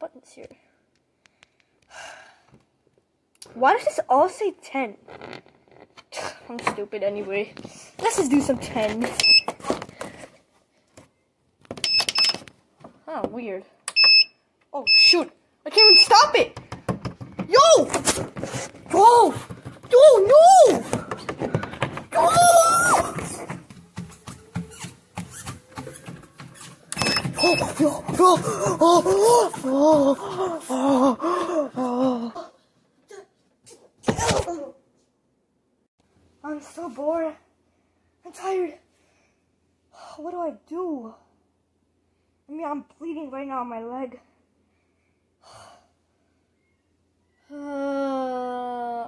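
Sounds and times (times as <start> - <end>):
short electronic beeps: 13.9 - 15.2
person speaking: 14.8 - 16.6, 17.4 - 26.2, 27.0 - 32.5
treadmill knocks and thumps: 16.5 - 30.7
child gasping: 27.5 - 33.3.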